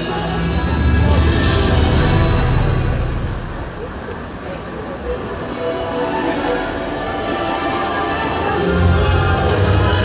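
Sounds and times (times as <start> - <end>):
rumbling soundtrack over loudspeakers: 0.0 - 10.0.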